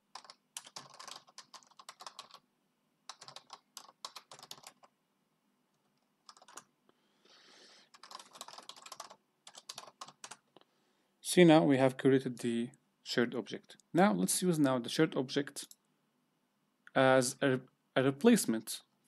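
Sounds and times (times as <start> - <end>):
typing on computer keyboard: 0.1 - 2.4, 3.1 - 4.9, 6.2 - 6.7, 7.9 - 10.4.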